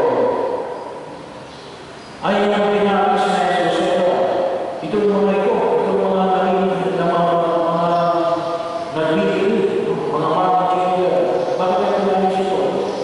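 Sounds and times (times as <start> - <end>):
man chanting a prayer: 2.2 - 13.0.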